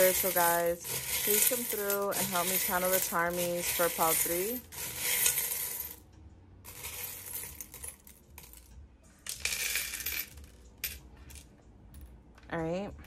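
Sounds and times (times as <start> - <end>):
metal charms jangling in a bowl: 0.0 - 6.0, 6.7 - 8.6
charms clattering onto a dish: 6.7 - 11.4.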